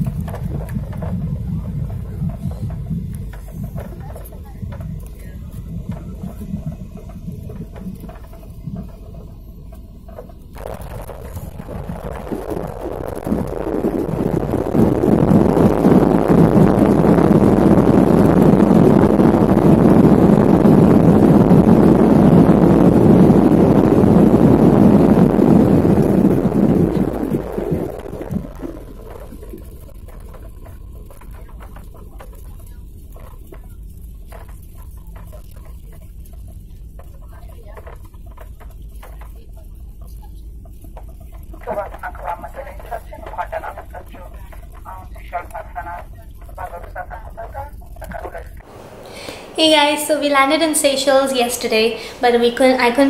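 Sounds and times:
jet engines rushing: 0.0s - 37.4s, 40.7s - 53.0s.

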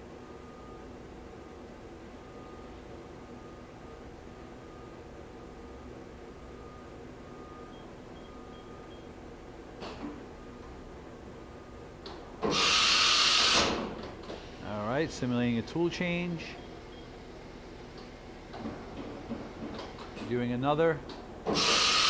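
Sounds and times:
machining center humming: 0.0s - 22.0s
loud hiss of air: 12.5s - 14.7s, 21.5s - 22.0s.

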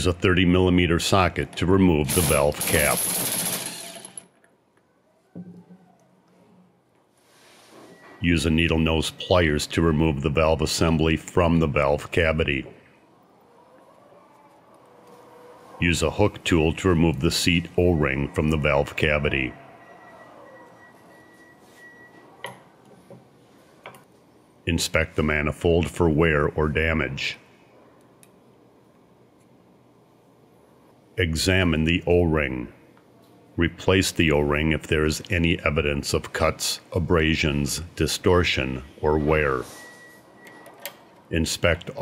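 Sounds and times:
faint steady high tone: 16.8s - 22.7s.

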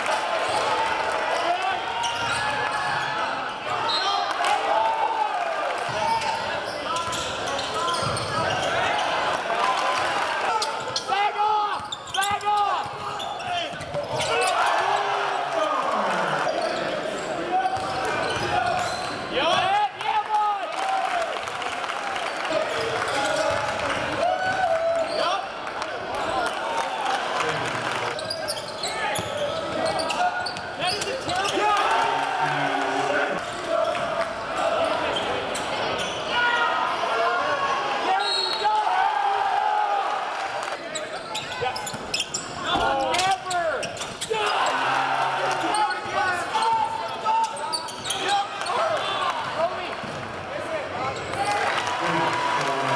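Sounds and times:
sneaker squeaks: 5.9s - 9.1s, 11.8s - 14.6s, 16.5s - 19.3s, 28.2s - 31.6s, 35.1s - 36.3s, 40.9s - 44.6s, 45.5s - 48.8s
murmur of voices: 25.1s - 52.9s.

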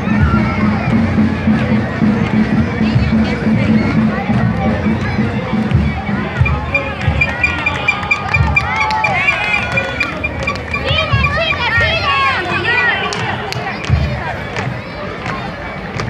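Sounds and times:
crowd chattering and calling: 0.0s - 16.0s
rapid high-pitched pulsing tone: 6.4s - 12.4s.

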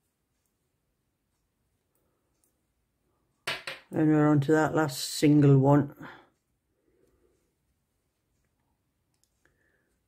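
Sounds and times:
knitting needles clicking: 8.4s - 9.5s.

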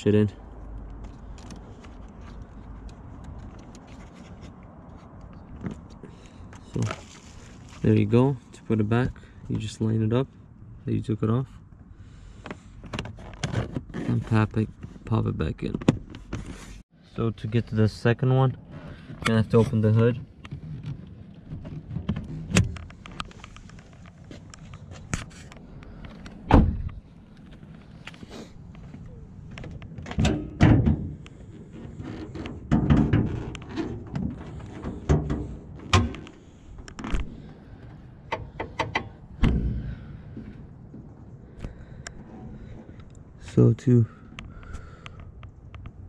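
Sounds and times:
car hood latch clicks and thunks: 26.5s - 27.0s, 30.0s - 31.2s, 32.4s - 36.3s, 38.3s - 40.1s.

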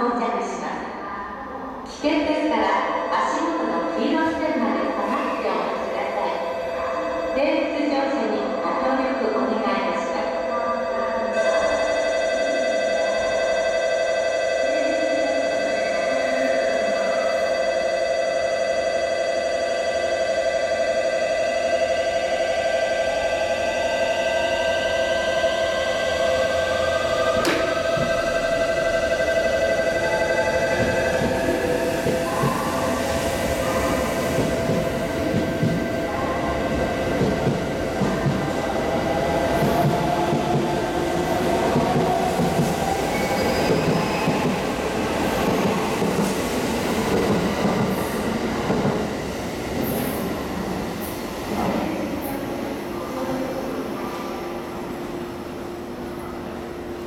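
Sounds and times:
sharp knock: 27.4s - 28.1s.

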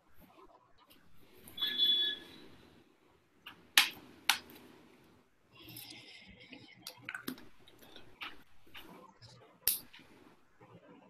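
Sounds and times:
high ringing tone: 1.6s - 2.5s.

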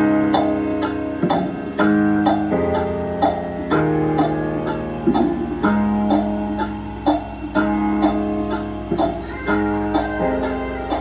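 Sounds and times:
strummed guitar chords: 0.0s - 11.0s.

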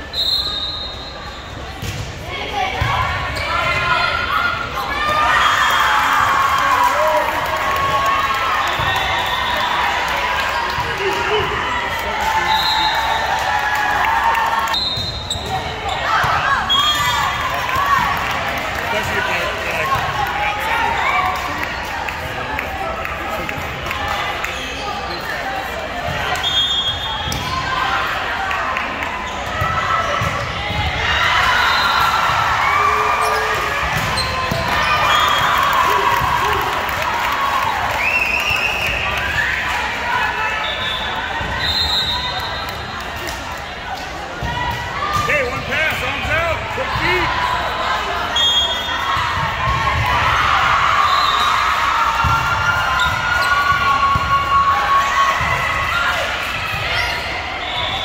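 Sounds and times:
echoing players' voices: 42.8s - 48.5s.

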